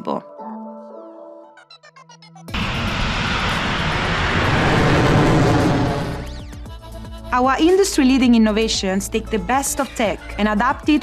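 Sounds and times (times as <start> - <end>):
rocket engines roaring: 2.6 - 6.6.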